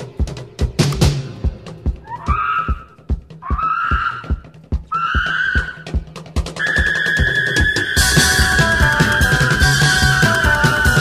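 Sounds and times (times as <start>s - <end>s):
driving drum beat: 0.0s - 11.0s
sliding high notes: 6.6s - 11.0s
rock band playing: 7.8s - 11.0s
bass line: 8.0s - 11.0s.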